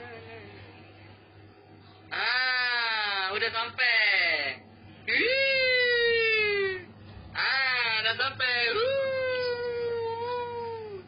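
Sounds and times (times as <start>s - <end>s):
high vocal wail: 5.1s - 6.9s, 8.8s - 11.0s.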